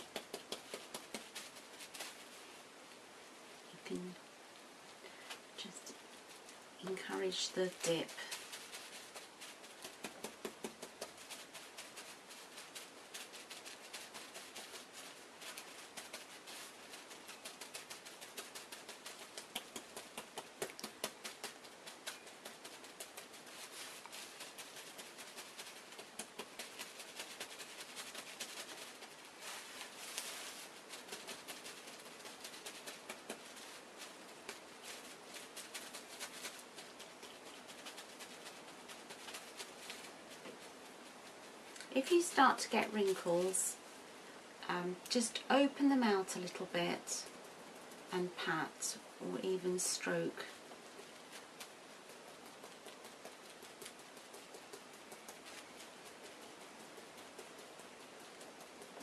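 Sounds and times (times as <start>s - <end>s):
soapy hands patting wet felt: 0.0s - 1.7s, 6.9s - 40.8s.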